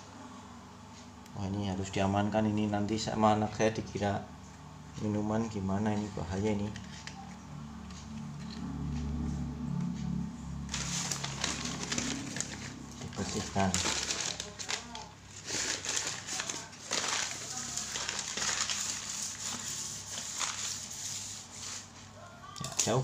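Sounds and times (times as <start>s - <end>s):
newspaper rustling and crinkling: 10.7s - 21.9s.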